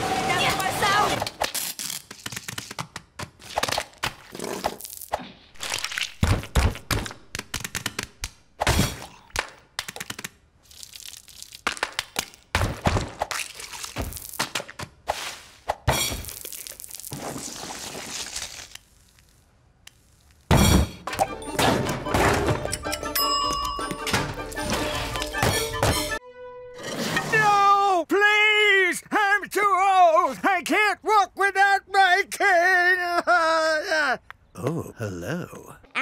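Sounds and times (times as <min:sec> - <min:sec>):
cartoon cracks and knocks: 0:05.7 - 0:10.4.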